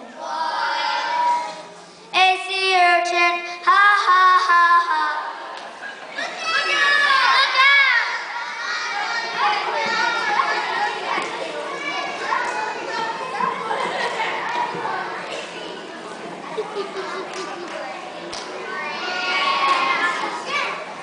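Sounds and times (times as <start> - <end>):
children chattering and calling out: 0.0 - 21.0.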